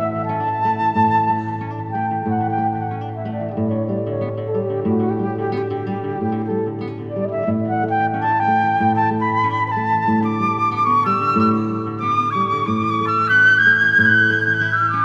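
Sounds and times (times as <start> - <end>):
flute melody: 0.0 - 15.0
plucked guitar accompaniment: 0.0 - 15.0.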